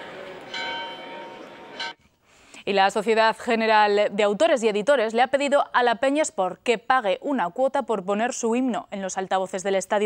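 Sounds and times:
church bell ringing: 0:00.4 - 0:02.0.

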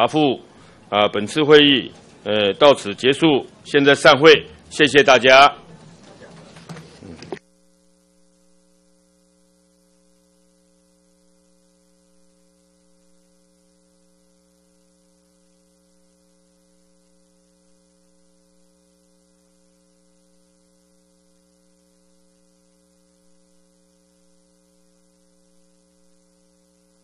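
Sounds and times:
faint electrical hum: 0:00.0 - 0:27.0.

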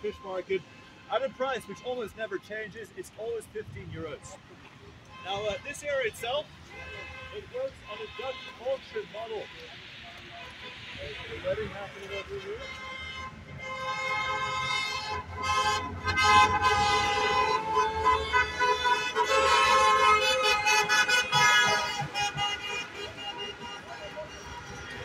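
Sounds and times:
car horns honking: 0:00.0 - 0:03.4, 0:05.1 - 0:25.0
passing traffic: 0:00.0 - 0:25.0.

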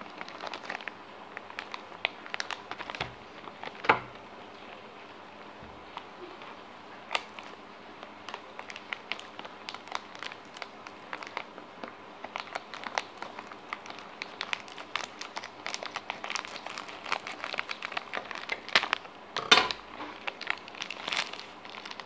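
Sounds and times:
plastic wrapper crinkling: 0:00.0 - 0:05.1, 0:05.8 - 0:22.0.

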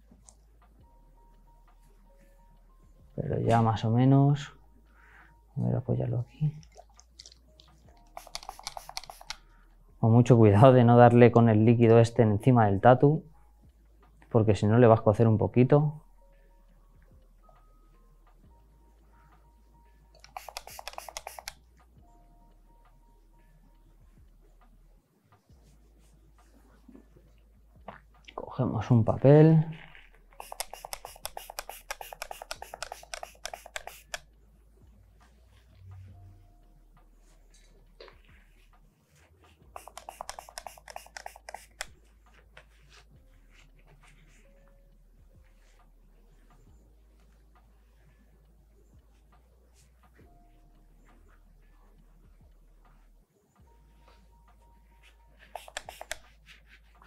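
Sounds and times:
spray bottle clicks and spritzes: 0:08.0 - 0:09.4, 0:20.2 - 0:21.6, 0:30.4 - 0:34.3, 0:39.8 - 0:42.0, 0:55.5 - 0:56.2.

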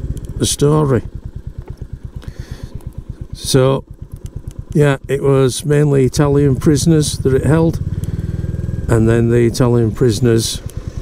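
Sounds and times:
motorcycle engine chugging: 0:00.0 - 0:11.0.

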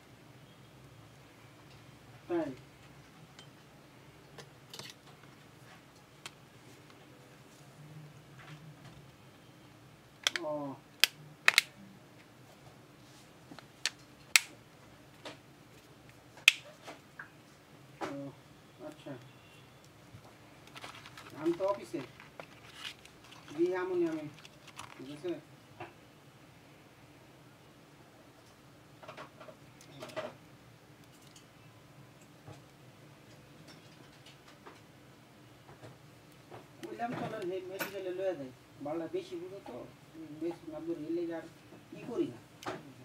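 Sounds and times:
faint steady hum: 0:00.0 - 0:43.0
plastic clips snapping into place: 0:11.0 - 0:11.7.

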